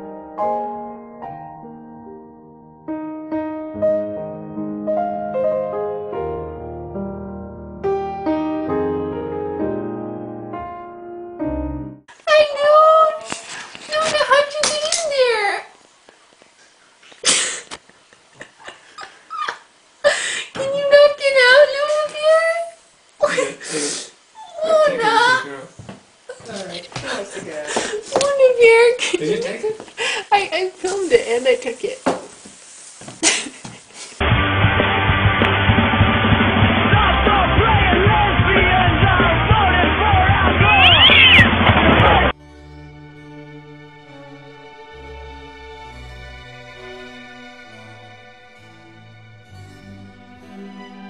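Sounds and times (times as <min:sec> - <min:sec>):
loud rock music: 0:34.2 - 0:42.3
cat meowing: 0:40.6 - 0:41.6.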